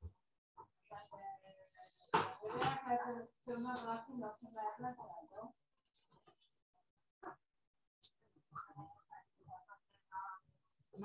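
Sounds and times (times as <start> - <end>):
faint indistinct speech: 8.3 - 11.0.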